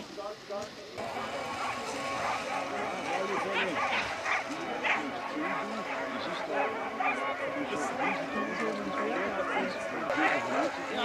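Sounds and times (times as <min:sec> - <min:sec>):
people's voices: 0:00.0 - 0:11.0
dogs barking and yipping: 0:01.0 - 0:11.0.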